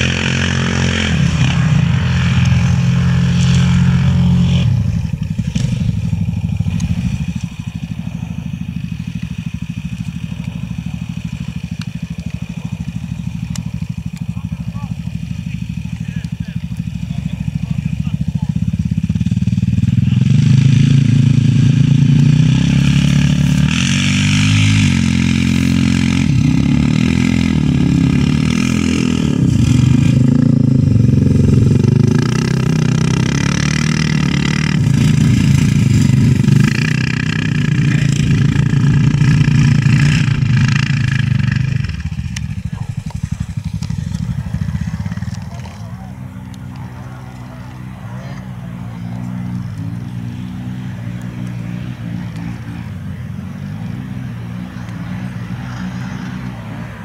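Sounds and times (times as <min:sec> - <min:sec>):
quad bike engines revving: 0:00.0 - 0:57.0.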